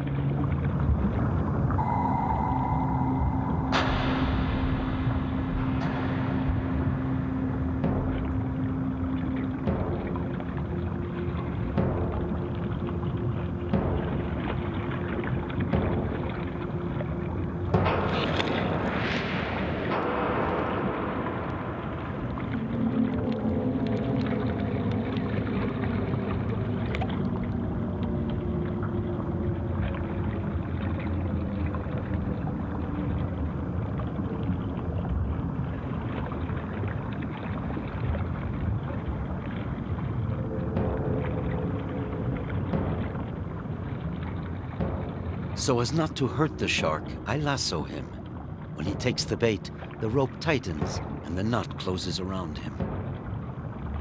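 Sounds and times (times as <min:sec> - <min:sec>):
steady low rumble: 0:00.0 - 0:51.8.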